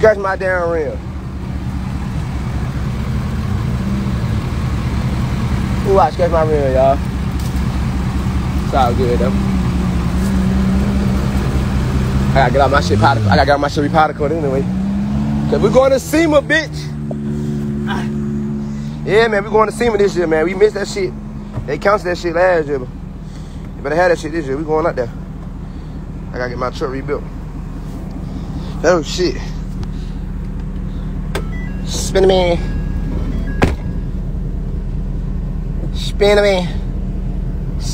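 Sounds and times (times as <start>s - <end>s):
truck engine idling: 0.0s - 14.6s, 15.2s - 37.9s.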